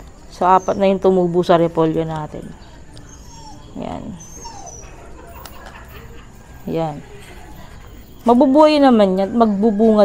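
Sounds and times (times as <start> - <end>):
dog whimpering: 0.4 - 1.2, 2.8 - 8.0.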